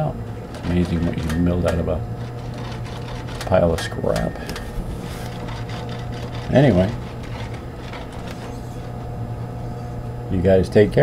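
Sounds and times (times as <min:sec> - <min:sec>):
electric motor hum: 0:00.0 - 0:11.0
power hammer tapping on anvil: 0:03.4 - 0:04.8.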